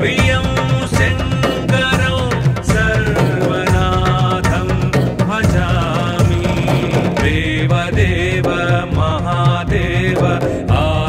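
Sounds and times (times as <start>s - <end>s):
devotional song with ornamented singing: 0.0s - 11.0s
steady percussion beat: 0.0s - 11.0s.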